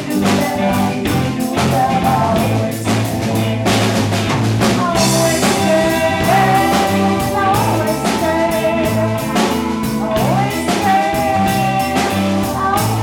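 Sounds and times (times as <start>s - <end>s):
live rock band playing: 0.0s - 13.0s
woman singing lead: 0.0s - 13.0s.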